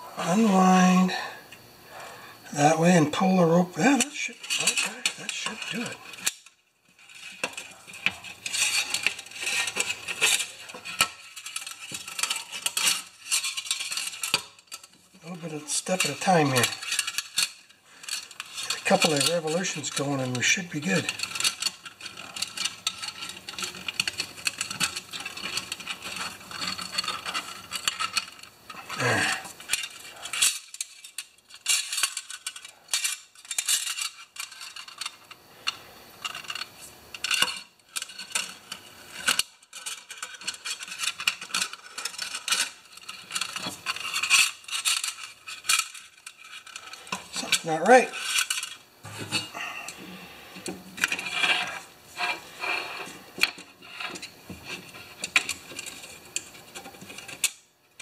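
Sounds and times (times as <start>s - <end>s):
metal spring clinking and scraping: 2.6s - 57.7s.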